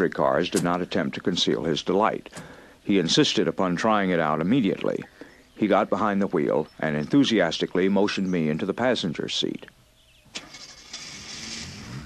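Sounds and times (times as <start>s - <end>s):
car engine starting and running: 10.3s - 12.0s.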